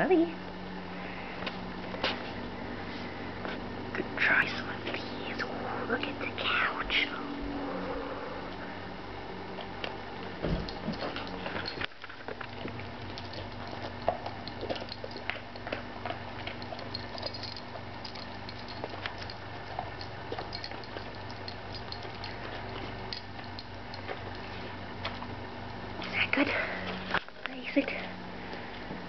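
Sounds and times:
faint steady hum: 0.0s - 29.0s
dog chewing crunchy biscuit: 9.5s - 27.4s.

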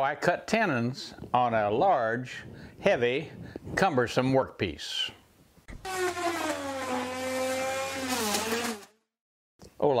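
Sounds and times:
power tool motor running: 5.8s - 9.0s.

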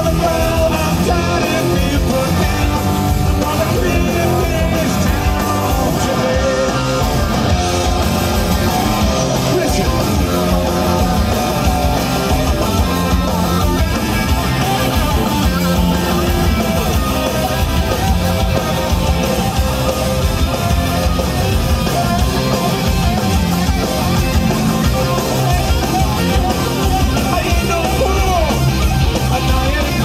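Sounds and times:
bass guitar: 0.0s - 30.0s
drums with cymbals: 0.0s - 30.0s
electric guitar: 0.0s - 30.0s.

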